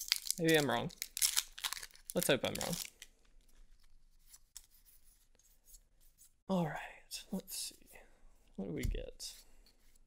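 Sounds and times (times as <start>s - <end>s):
cards sliding and ticking: 2.6s - 6.4s.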